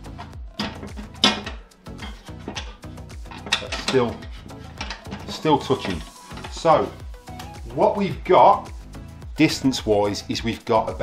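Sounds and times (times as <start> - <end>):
background music with beat: 0.0 - 11.0
grill lid clanking: 0.1 - 6.7.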